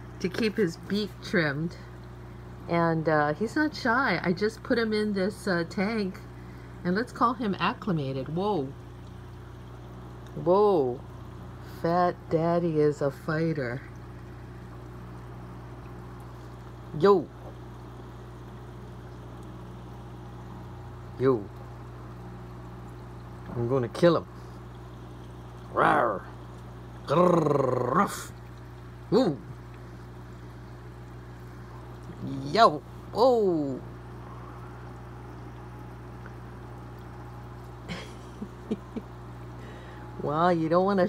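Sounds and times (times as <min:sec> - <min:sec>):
aquarium filter humming: 0:00.0 - 0:41.0
faint water trickle: 0:00.0 - 0:41.0.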